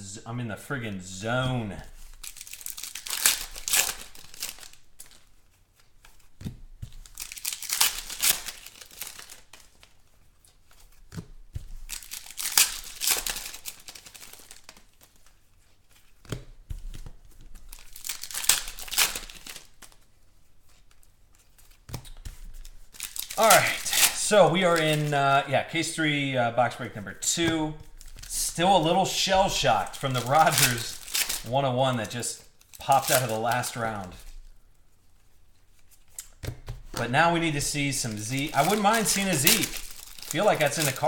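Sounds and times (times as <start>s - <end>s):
wrapper crinkling: 1.8s - 16.2s, 17.4s - 41.0s
foil packs ripping open: 2.0s - 5.4s, 6.8s - 10.0s, 11.8s - 15.2s, 17.6s - 20.0s, 22.5s - 26.0s, 27.2s - 34.5s, 37.0s - 41.0s.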